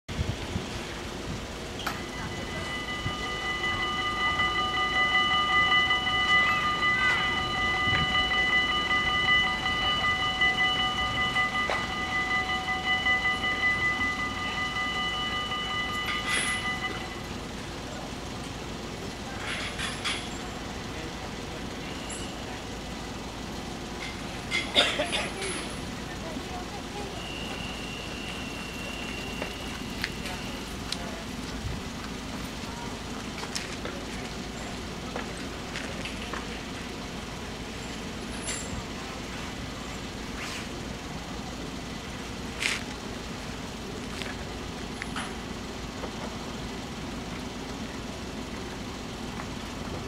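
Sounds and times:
level crossing bells ringing: 0:01.0 - 0:50.0.

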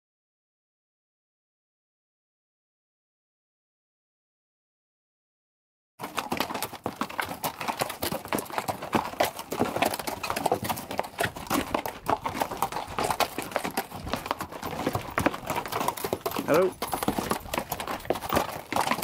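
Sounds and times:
mule hooves clopping on rocks: 0:06.0 - 0:19.0.

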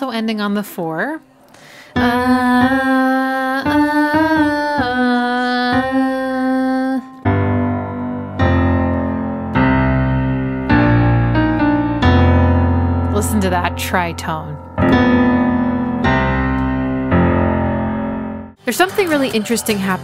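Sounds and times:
keyboard: 0:01.2 - 0:20.0
woman singing: 0:01.9 - 0:07.8
digital piano chords: 0:02.0 - 0:20.0.

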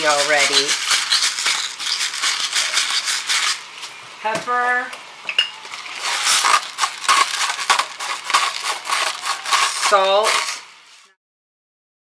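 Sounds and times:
pepper mill grinding: 0:00.0 - 0:03.7, 0:05.7 - 0:11.0.

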